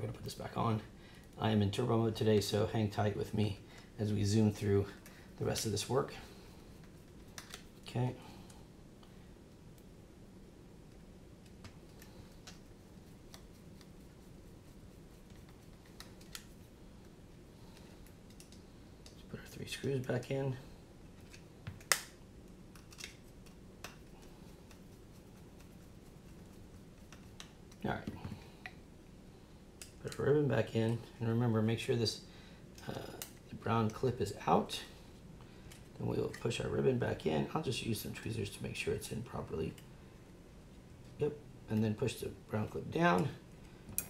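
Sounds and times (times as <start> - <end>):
low room hum: 0.0 - 44.0.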